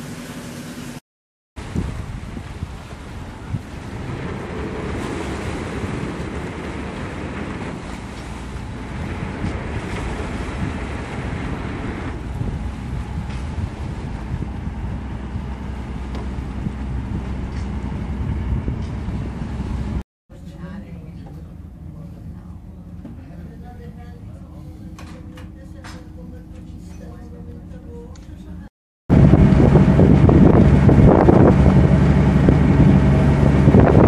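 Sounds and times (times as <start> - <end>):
wind buffeting microphone: 1.6 - 20.0, 29.1 - 34.0
boat engine rumbling: 1.6 - 34.0
water churning against hull: 1.6 - 34.0.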